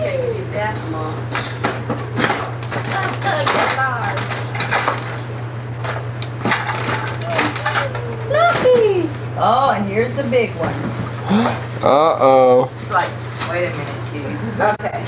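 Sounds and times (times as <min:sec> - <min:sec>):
indistinct voices: 0:00.0 - 0:05.3, 0:06.2 - 0:15.0
steady low hum: 0:00.0 - 0:15.0.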